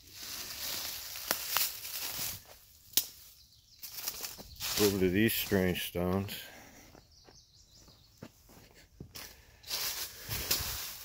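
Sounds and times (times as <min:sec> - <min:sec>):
footsteps through dry leaves: 0:00.0 - 0:06.0, 0:09.2 - 0:11.0
twigs snapping: 0:00.8 - 0:04.8.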